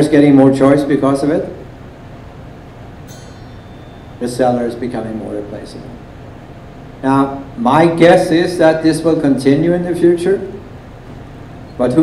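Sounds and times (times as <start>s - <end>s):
low room hum: 0.0s - 12.0s
high-pitched ringing tone: 3.0s - 6.3s.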